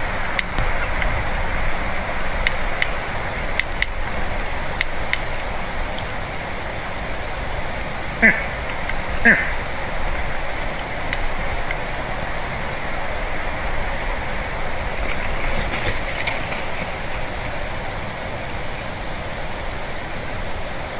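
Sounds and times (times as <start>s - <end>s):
wind rushing through trees: 0.0s - 20.9s.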